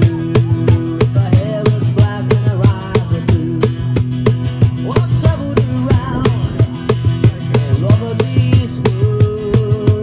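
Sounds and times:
acoustic guitar strumming: 0.0s - 10.0s
cajon beat: 0.0s - 10.0s
man singing: 0.0s - 10.0s.

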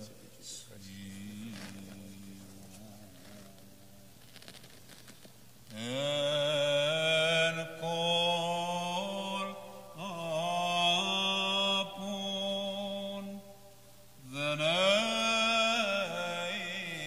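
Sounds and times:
man singing church chant: 0.0s - 4.1s, 5.7s - 17.0s.

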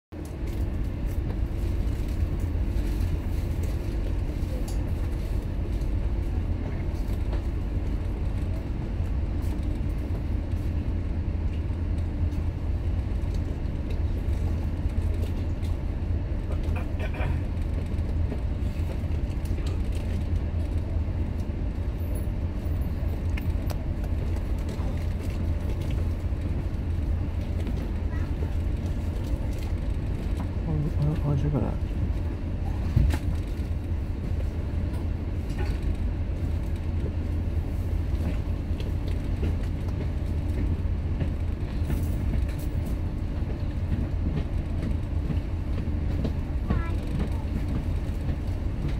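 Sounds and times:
ferry engines droning: 0.2s - 48.9s.

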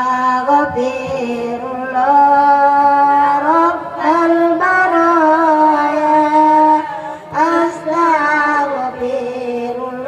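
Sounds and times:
woman singing a devotional chant: 0.0s - 10.0s.

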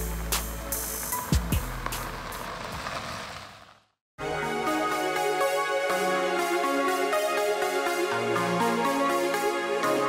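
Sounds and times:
car engine: 0.0s - 4.0s
tyres crunching over gravel: 0.1s - 3.8s.

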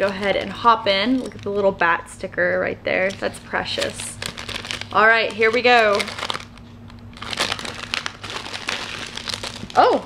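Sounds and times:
packaging crinkling and rustling: 0.0s - 1.7s, 3.0s - 10.0s.

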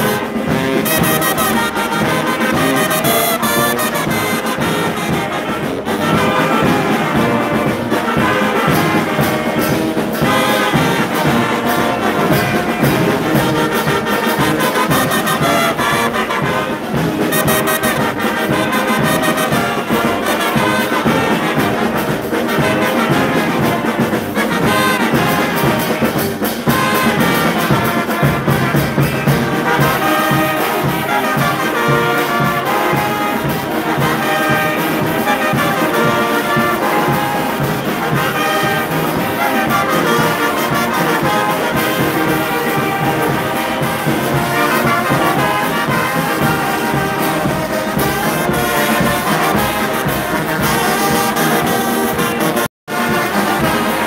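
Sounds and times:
brass band playing: 0.0s - 54.0s
saxophones and clarinet: 0.0s - 54.0s
steady drum beat: 0.0s - 54.0s
trumpets and cornets: 0.0s - 54.0s.

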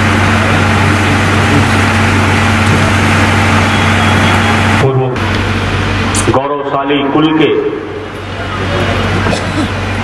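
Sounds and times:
engine-like drone: 0.0s - 10.0s.

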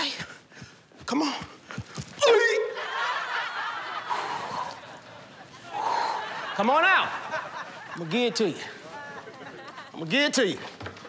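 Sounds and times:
studio audience laughing: 2.8s - 10.1s.

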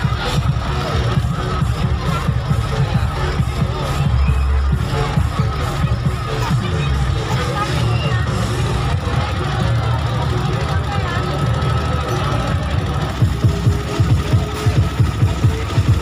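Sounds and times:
loud bass-heavy music: 0.0s - 16.0s.

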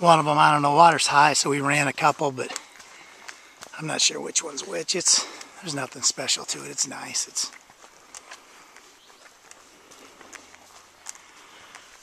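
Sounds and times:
faint footsteps on dirt trail: 0.0s - 12.0s.

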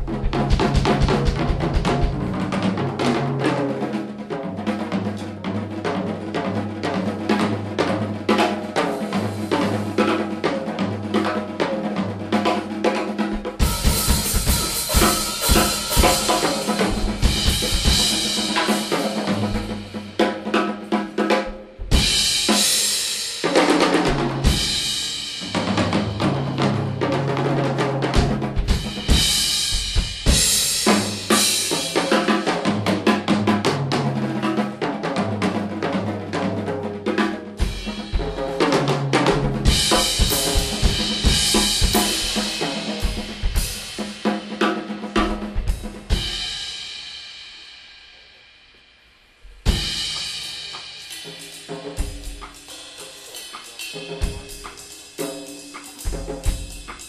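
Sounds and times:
jazz band playing: 0.0s - 22.6s, 23.6s - 46.2s, 49.7s - 57.0s
drum kit and cymbals: 0.0s - 57.0s.

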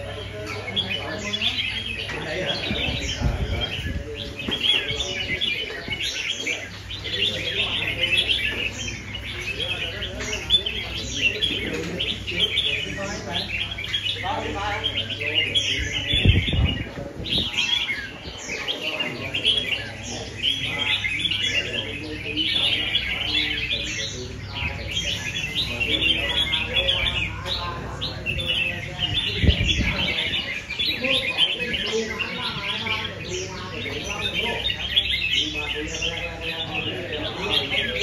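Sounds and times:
birds singing and chirping: 0.0s - 38.0s.

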